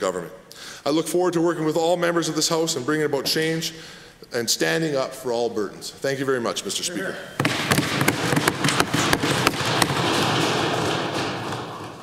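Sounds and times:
desk thumping applause: 7.4 - 12.0.

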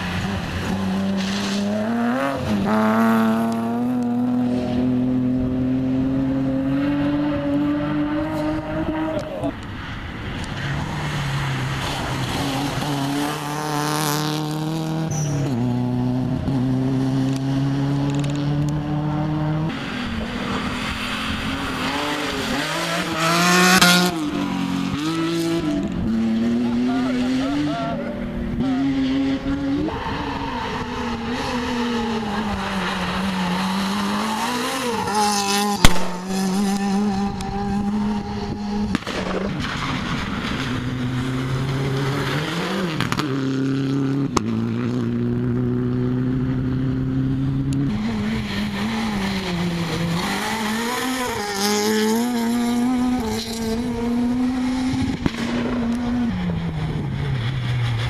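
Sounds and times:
rally car engines revving: 0.0 - 58.0
sharp crack: 35.8 - 37.5, 38.8 - 40.8.

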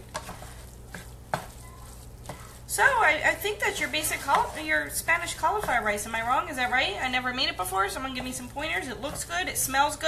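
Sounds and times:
faint sizzle in frying pan: 0.0 - 10.0
spoon scraping and tapping pan: 4.1 - 4.6.

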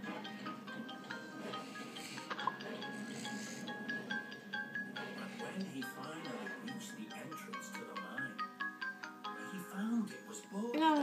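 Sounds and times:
mallet percussion game music: 0.0 - 9.7.

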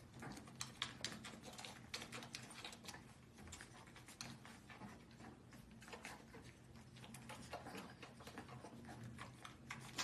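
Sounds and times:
puppies' small clicks and taps: 0.0 - 10.0.

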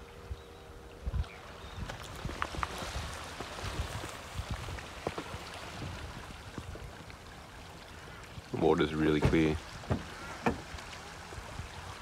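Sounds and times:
sea lapping on pebble shore: 1.4 - 12.0.

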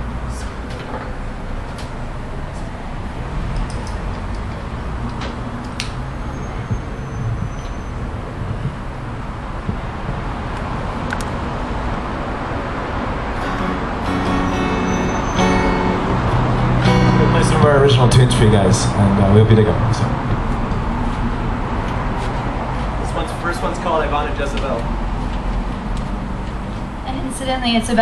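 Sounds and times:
electric guitar notes: 13.2 - 20.7
electric bass notes: 13.2 - 22.1.

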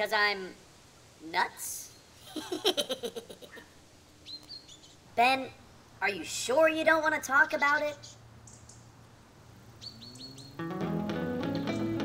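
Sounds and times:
high bird chirps: 4.2 - 5.0, 7.5 - 8.9, 9.8 - 10.6
plucked guitar music: 10.6 - 12.0.

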